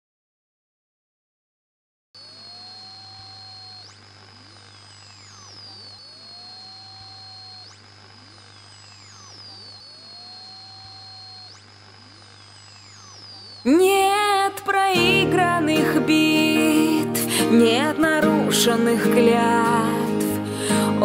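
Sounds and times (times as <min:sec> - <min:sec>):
steady low hum: 0:02.2 - 0:15.5
gliding high whistle: 0:05.4 - 0:07.8, 0:09.1 - 0:11.6.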